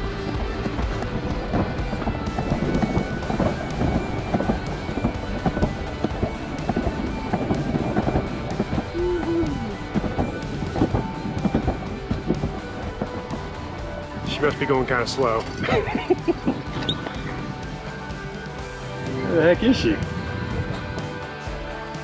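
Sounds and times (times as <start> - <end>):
background music: 0.0 - 22.0
sled rumbling down concrete track: 0.0 - 22.0.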